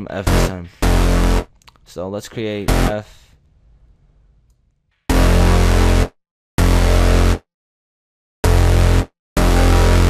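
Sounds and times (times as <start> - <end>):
synth bass notes: 0.0 - 1.5, 2.6 - 3.0, 5.1 - 7.5, 8.4 - 10.0.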